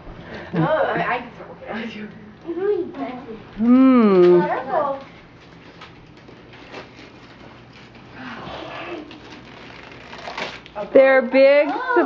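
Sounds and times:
person cooing ooh: 0:03.6 - 0:04.4
gift wrap rustling: 0:04.5 - 0:12.0.

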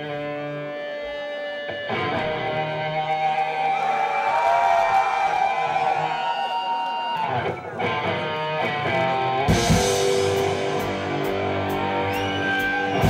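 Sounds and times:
rock band playing live: 0:00.0 - 0:03.6, 0:07.2 - 0:13.0.

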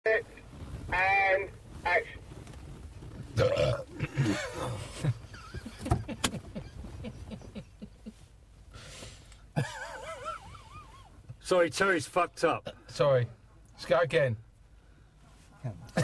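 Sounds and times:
men laughing: 0:04.0 - 0:08.3, 0:09.6 - 0:11.2.

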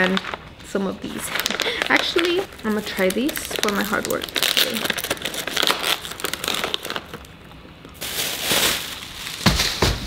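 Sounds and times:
cardboard packaging crinkling: 0:00.0 - 0:10.0
plastic bag rustling: 0:00.0 - 0:10.0.

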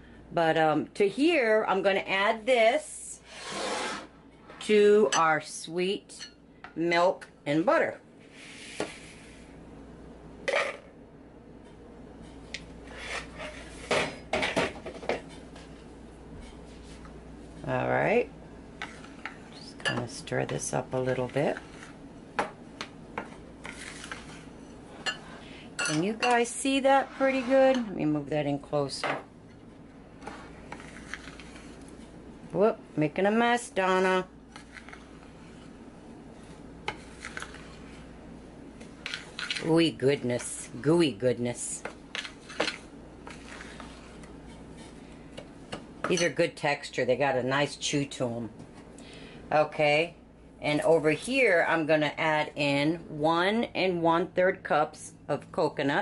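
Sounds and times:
fork stirring dough in bowl: 0:18.8 - 0:22.0, 0:22.8 - 0:25.2, 0:25.8 - 0:27.9, 0:30.2 - 0:38.2, 0:41.8 - 0:46.2.

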